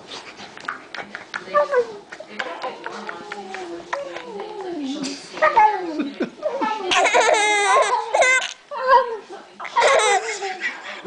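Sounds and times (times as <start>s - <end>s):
baby squealing and giggling: 6.9s - 8.6s.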